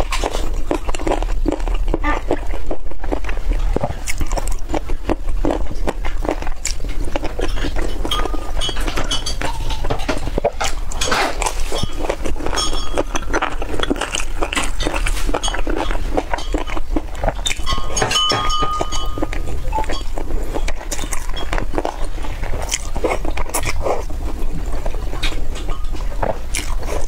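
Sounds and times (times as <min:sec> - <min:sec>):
chewing and mouth smacks: 0:00.0 - 0:27.0
steady low hum: 0:00.0 - 0:27.0.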